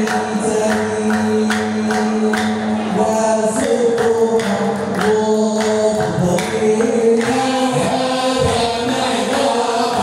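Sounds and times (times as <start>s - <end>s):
men chanting a hymn: 0.0s - 10.0s
sharp percussive beats: 0.0s - 10.0s.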